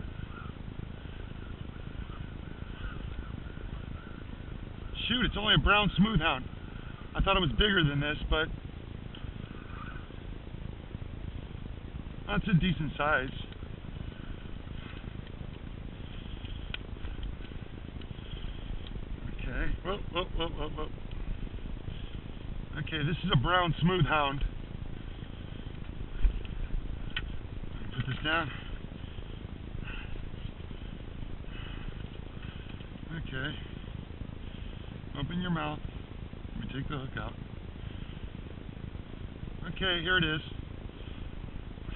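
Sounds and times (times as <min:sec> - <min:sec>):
low wind rumble on microphone: 0:00.0 - 0:41.9
faint rustles: 0:08.4 - 0:41.9.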